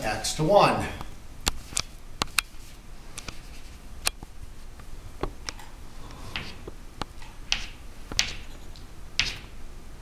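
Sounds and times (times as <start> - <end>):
chalk tapping and scratching: 1.5 - 3.8, 7.5 - 8.5, 9.2 - 9.5.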